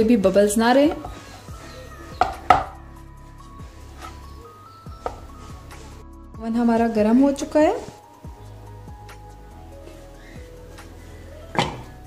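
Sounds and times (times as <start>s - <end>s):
cake pan knocking on surface: 2.2s - 2.8s.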